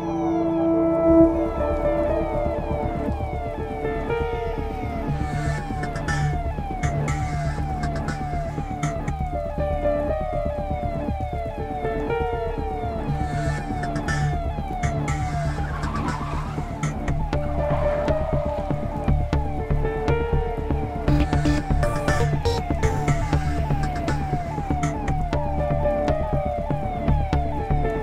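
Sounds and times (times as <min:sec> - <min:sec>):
film score with pulsing bass: 0:00.0 - 0:28.0
police siren: 0:00.0 - 0:28.0.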